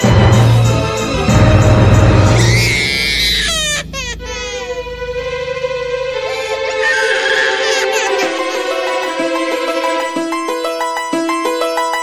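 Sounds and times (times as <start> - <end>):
steady held note: 1.3 - 10.3
high wailing vocal cry: 2.4 - 4.8, 6.3 - 10.1.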